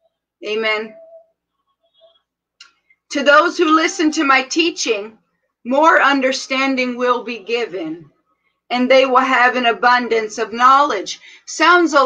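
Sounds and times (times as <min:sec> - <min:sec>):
woman speaking: 0:00.4 - 0:01.3, 0:03.1 - 0:12.0.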